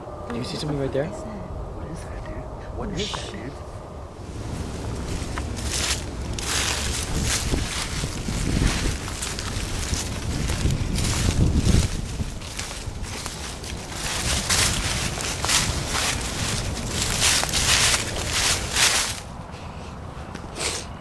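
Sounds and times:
wind buffeting microphone: 0.0 - 20.3
footsteps: 3.0 - 19.3.

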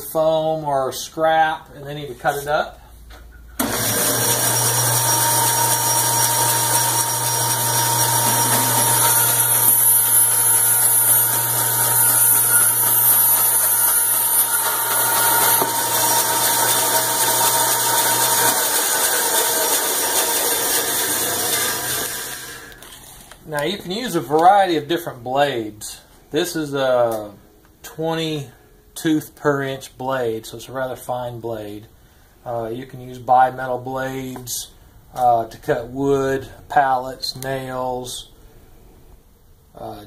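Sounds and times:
band saw motor hum: 3.6 - 22.9
saw blade cutting cardboard: 4.5 - 23.0.

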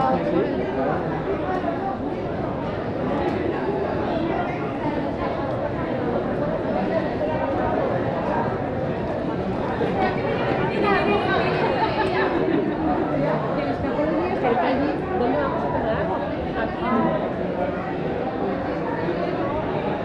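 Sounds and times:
chatter of people talking: 0.0 - 20.0.

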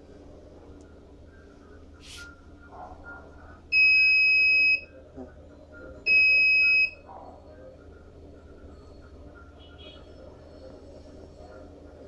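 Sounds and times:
high-pitched buzzer beeps: 6.1 - 7.0.

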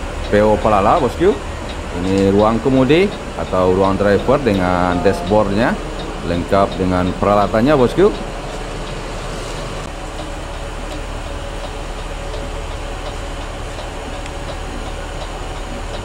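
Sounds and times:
air conditioning running: 0.0 - 16.0
bus engine idling: 0.0 - 16.0.

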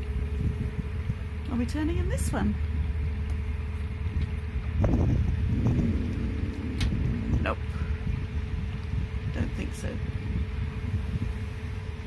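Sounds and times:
diesel boat engine running: 0.0 - 12.0.

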